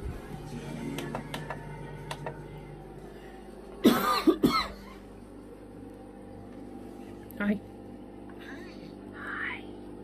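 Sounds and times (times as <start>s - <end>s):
raspy cough-like sound: 3.8s - 4.8s.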